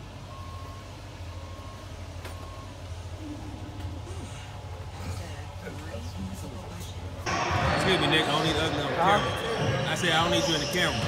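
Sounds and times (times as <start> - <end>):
bus engine rumble: 0.0 - 7.2
reversing alarm beeping: 0.2 - 2.9, 7.3 - 11.0.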